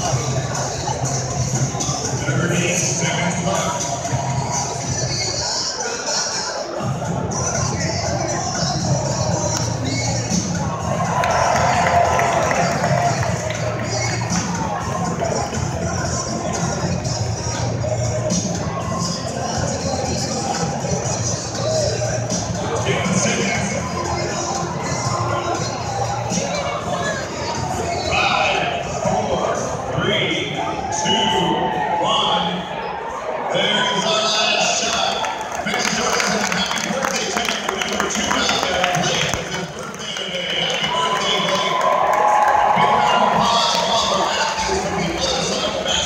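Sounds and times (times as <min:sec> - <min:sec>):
music over sound system: 0:00.0 - 0:32.7, 0:33.6 - 0:46.0
crowd chatter: 0:00.0 - 0:46.0.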